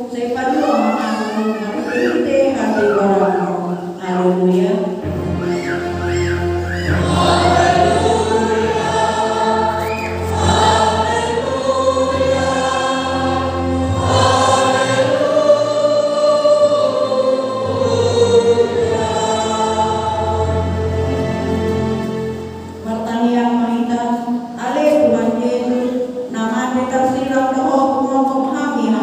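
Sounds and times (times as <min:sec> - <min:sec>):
congregation singing a hymn: 0:00.0 - 0:29.0.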